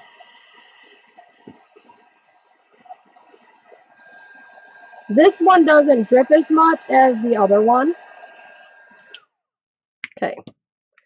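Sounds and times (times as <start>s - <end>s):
heat tool fan whine: 0.0s - 9.2s.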